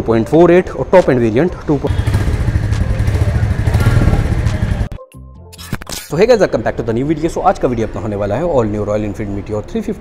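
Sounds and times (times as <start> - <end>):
motorcycle engine revving: 1.9 - 4.9.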